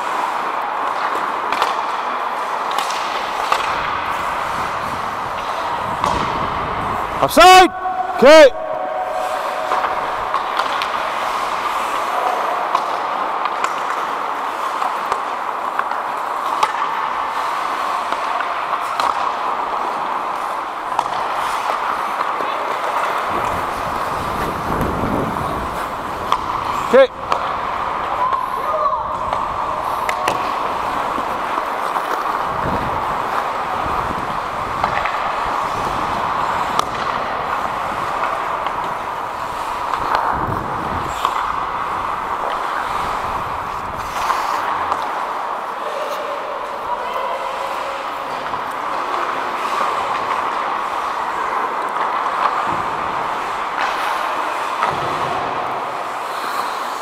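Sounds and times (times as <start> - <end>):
hockey sticks on ice: 0.0 - 57.0
skates scraping on ice: 0.0 - 57.0
sharp crack: 0.9 - 7.7, 29.1 - 46.0
wind buffeting microphone: 3.8 - 8.2, 23.3 - 28.1, 32.3 - 44.2
distant echoing calls: 7.4 - 10.6.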